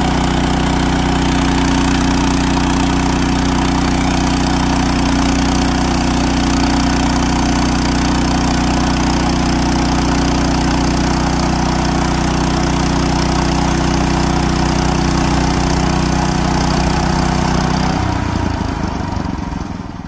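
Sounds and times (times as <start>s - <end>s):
band saw cutting through log: 0.0s - 18.0s
small engine running: 0.0s - 20.0s.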